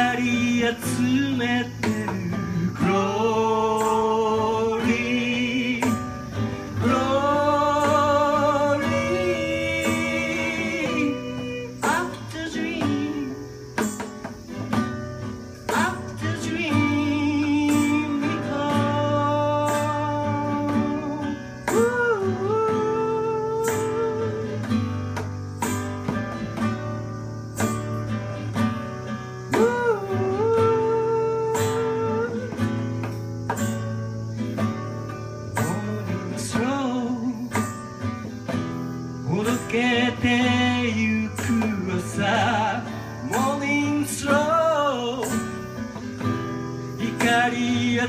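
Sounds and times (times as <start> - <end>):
man singing: 0.0 - 13.9, 15.6 - 25.0, 29.5 - 32.9, 35.5 - 37.9, 39.2 - 46.2, 46.8 - 48.0
strummed acoustic guitar: 0.0 - 48.0.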